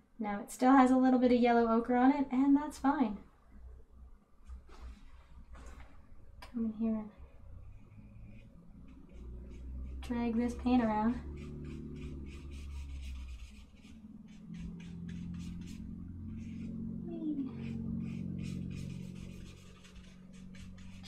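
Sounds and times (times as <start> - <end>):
low steady hum: 0.0 - 21.0
paintbrush strokes on paper: 7.6 - 21.0.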